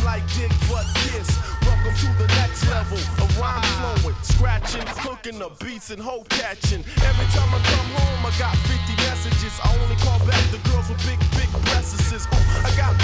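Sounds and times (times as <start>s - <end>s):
hip hop music with vocals: 0.0s - 13.0s.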